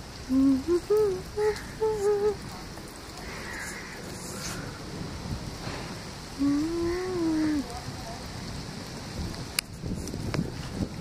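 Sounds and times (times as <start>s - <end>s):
steady rain hiss: 0.0s - 11.0s
person humming: 0.3s - 2.4s, 6.4s - 7.6s.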